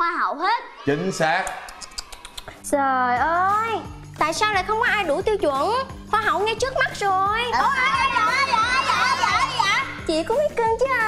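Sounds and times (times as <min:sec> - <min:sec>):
background music: 0:00.0 - 0:11.0
children crying out: 0:07.5 - 0:10.0.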